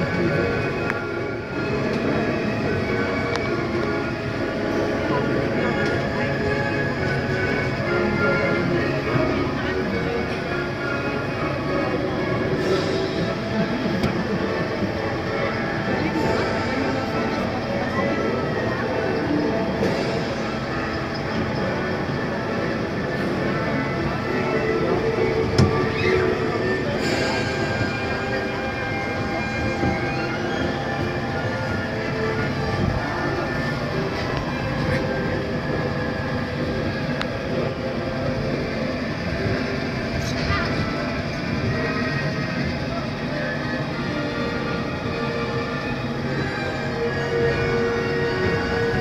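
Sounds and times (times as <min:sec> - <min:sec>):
indistinct voices: 0:00.0 - 0:49.0
monorail train running on track: 0:00.0 - 0:49.0
music: 0:00.0 - 0:49.0.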